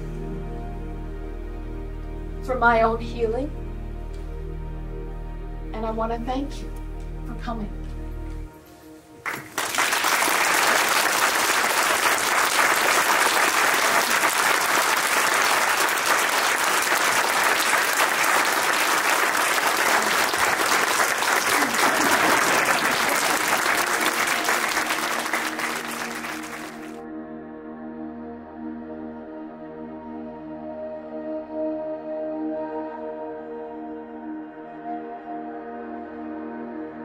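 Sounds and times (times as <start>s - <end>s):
audience applauding: 9.2s - 27.0s.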